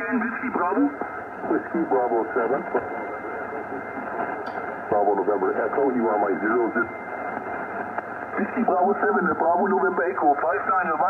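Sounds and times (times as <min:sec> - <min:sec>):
faint jumbled radio voices: 0:00.0 - 0:11.0
radio band noise hiss: 0:00.0 - 0:11.0.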